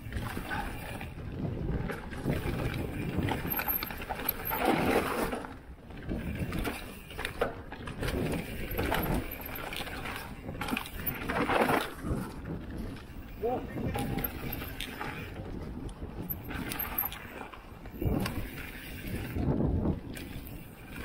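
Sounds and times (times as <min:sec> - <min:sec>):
bike rattles and clicks: 0:00.0 - 0:21.0
bike tyres rolling on dirt: 0:00.0 - 0:21.0
wind on microphone: 0:00.0 - 0:21.0.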